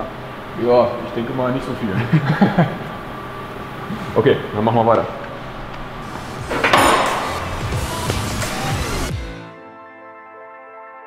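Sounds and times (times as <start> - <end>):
metal clattering and scraping: 6.0 - 8.2
background music: 6.0 - 11.0.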